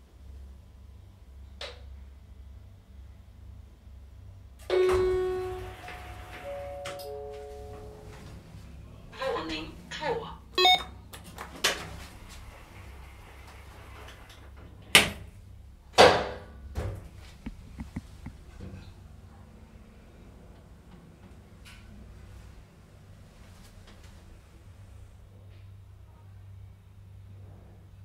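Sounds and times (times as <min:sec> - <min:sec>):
elevator chime ding: 0:04.7 - 0:08.2, 0:10.6 - 0:10.9
steady low hum: 0:16.6 - 0:28.0
sharp knocks: 0:17.4 - 0:18.4.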